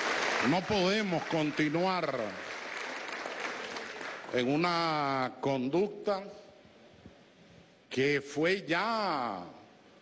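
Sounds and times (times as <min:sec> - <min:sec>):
crowd clapping: 0:00.0 - 0:05.0.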